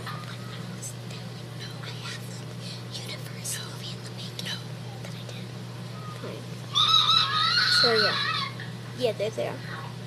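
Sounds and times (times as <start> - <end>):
faint whispering: 0.0 - 5.5
steady low hum: 0.0 - 10.0.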